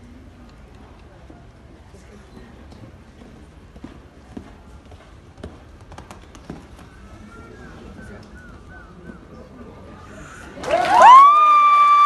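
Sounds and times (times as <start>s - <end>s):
murmur of spectators' voices: 0.0s - 12.0s
horse hoofbeats on dirt: 2.3s - 7.1s.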